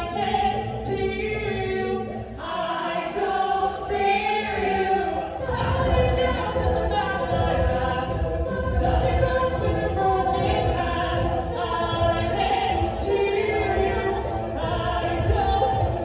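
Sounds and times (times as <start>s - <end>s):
a cappella group singing: 0.0s - 16.0s.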